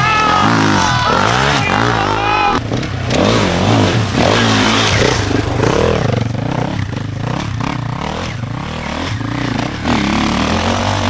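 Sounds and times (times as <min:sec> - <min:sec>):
another motorcycle revving: 0:00.0 - 0:11.0
motorcycle engine revving: 0:00.0 - 0:11.0.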